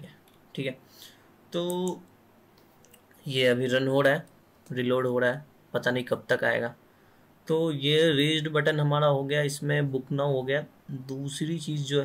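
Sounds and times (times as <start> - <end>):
man speaking: 1.5 - 2.1, 3.2 - 6.8, 7.5 - 12.0.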